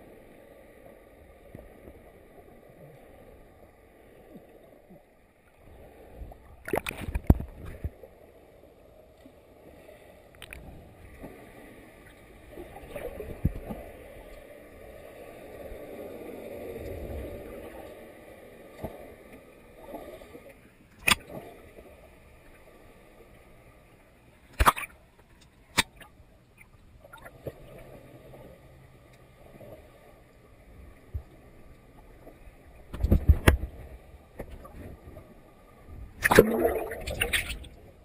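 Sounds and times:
muffled underwater water rush: 0.0s - 38.0s.

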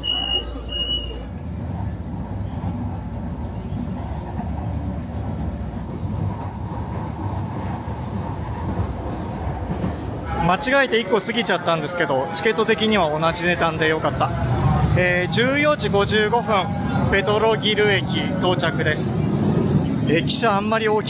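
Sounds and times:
train rumbling: 0.0s - 21.0s.

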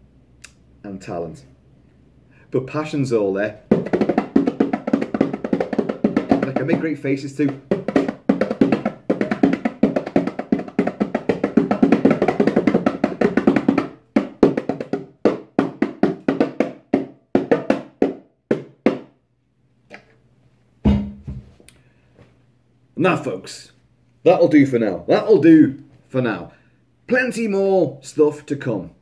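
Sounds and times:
bongos played by hand: 3.6s - 19.2s
low thump: 20.8s - 21.5s.

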